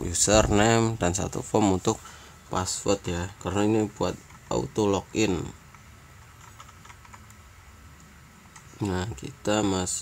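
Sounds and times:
faint keyboard keystrokes: 5.7 - 7.4.

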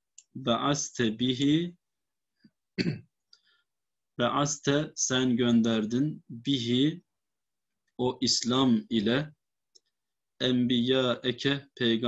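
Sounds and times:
man clearing his throat: 2.8 - 3.1.

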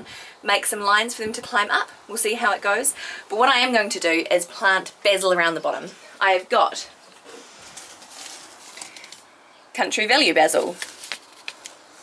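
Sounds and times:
low background hiss: 0.0 - 12.0
paper seed packets rustling: 7.2 - 9.3, 10.3 - 12.0.

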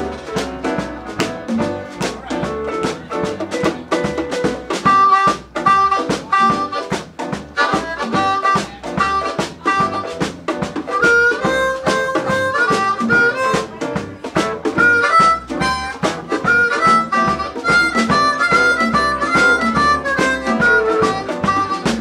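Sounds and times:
live band playing: 0.0 - 22.0
amplified blues harmonica: 3.6 - 22.0.

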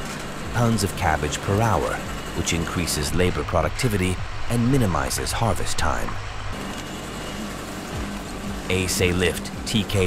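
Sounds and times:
harvester machinery clattering: 0.0 - 10.0
tractor engine running: 0.0 - 10.0.

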